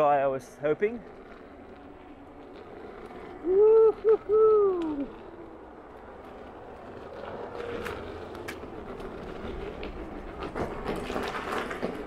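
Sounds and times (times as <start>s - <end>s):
tyre and wind rumble: 0.0s - 12.0s.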